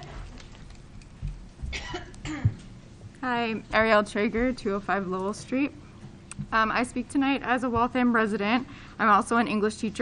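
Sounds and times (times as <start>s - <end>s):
person coughing: 1.7s - 2.6s.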